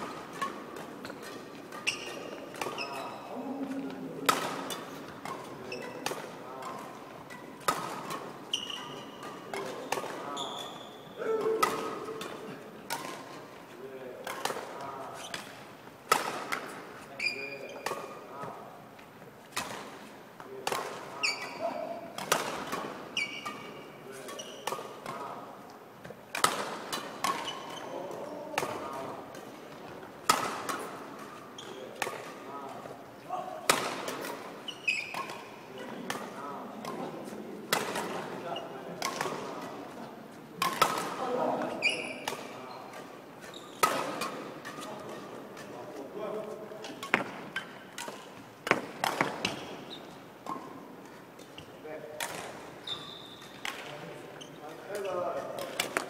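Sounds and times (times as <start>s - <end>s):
badminton racket hitting shuttlecock: 0.0s - 13.6s, 14.2s - 17.1s, 17.7s - 51.5s, 52.2s - 54.0s, 54.9s - 56.0s
sneakers squeaking on wooden floor: 0.3s - 4.0s, 4.6s - 12.6s, 14.9s - 15.7s, 17.0s - 18.6s, 21.2s - 25.3s, 27.0s - 28.6s, 29.7s - 32.2s, 34.6s - 36.0s, 41.6s - 45.2s, 46.9s - 51.8s, 52.4s - 55.4s.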